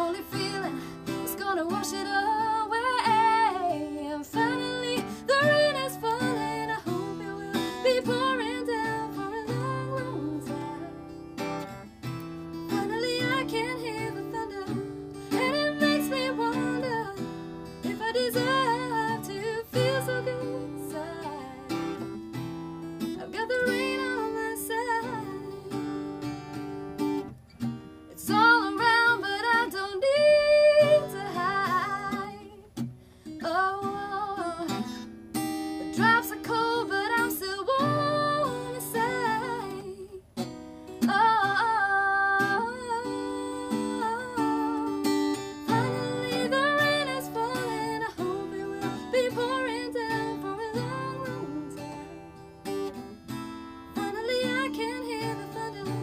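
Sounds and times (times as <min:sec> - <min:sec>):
woman singing: 0:00.0 - 0:27.3, 0:28.1 - 0:56.0
strummed acoustic guitar: 0:00.0 - 0:56.0.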